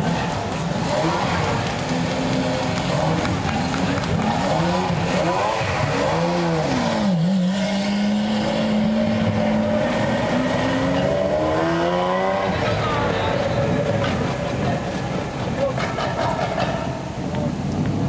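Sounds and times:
sports car engine revving: 0.7 - 12.8.

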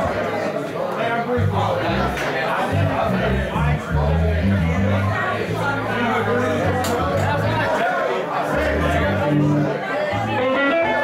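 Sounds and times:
bar crowd chatter: 0.0 - 11.0
low bass notes: 1.4 - 7.7, 8.5 - 10.4
amplified electric guitar: 8.5 - 11.0.

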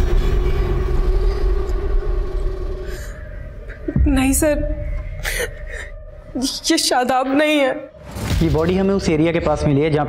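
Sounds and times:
deep rumble: 0.0 - 8.8.

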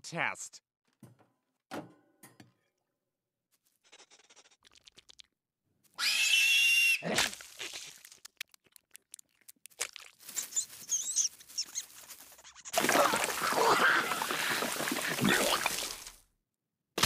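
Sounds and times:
small wet smacks: 7.2 - 10.6
high squeaks: 10.4 - 12.8
gushing spray of blood: 12.8 - 16.2.

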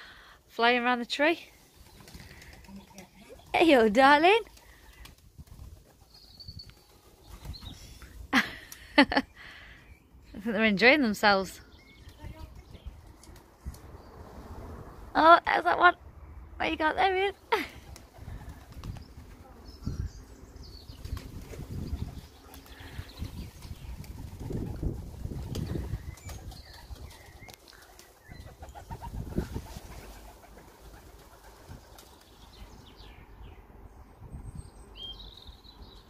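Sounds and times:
pigeon wings flapping: 1.7 - 6.2, 17.6 - 19.4, 20.9 - 32.4.

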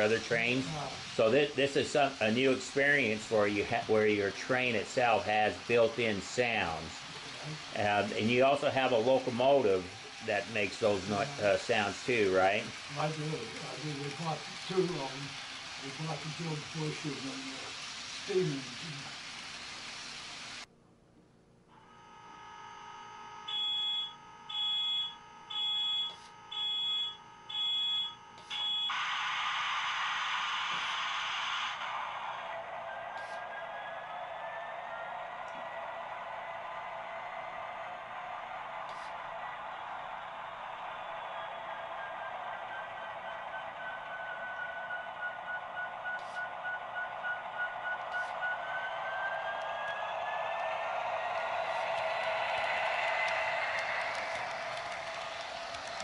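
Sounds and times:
loud burst of noise: 0.0 - 20.7, 28.9 - 33.6, 38.8 - 56.0.

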